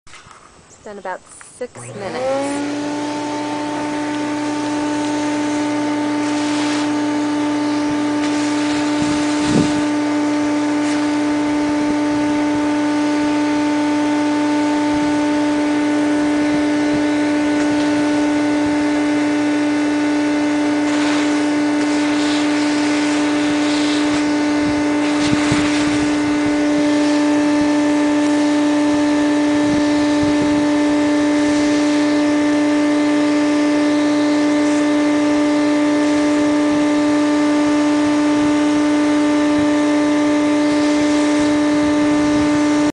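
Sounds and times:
vacuum cleaner motor whining: 1.3 - 42.9.

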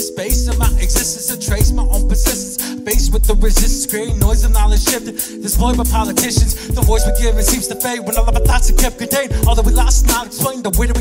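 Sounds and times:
man rapping over a beat: 0.0 - 11.0
deep bass notes: 0.3 - 2.3, 3.0 - 4.9, 5.6 - 7.6, 8.2 - 10.2, 10.8 - 11.0.

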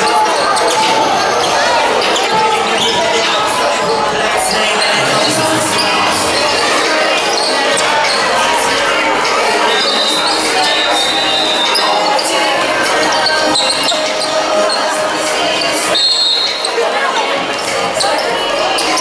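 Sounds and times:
voices talking and calling out: 0.0 - 19.0.

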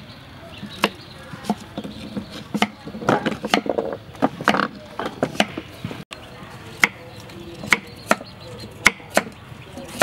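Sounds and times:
knife chopping on wooden block: 0.8 - 5.6.

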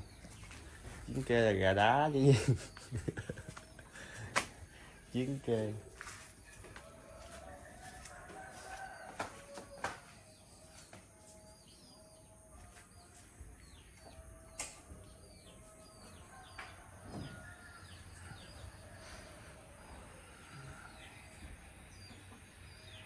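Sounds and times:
small birds chirping: 0.0 - 23.0
faint rooster crowing: 6.4 - 13.1, 13.7 - 23.0.

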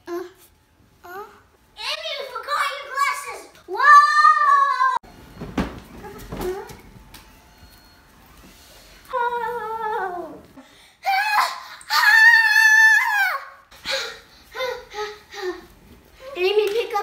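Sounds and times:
child shrieking and screaming: 11.0 - 13.6.

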